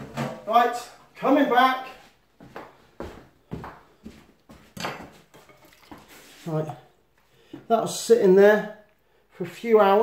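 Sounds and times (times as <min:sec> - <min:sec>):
footsteps approaching: 0:01.8 - 0:07.7
knife set down on wooden board: 0:04.8 - 0:05.6.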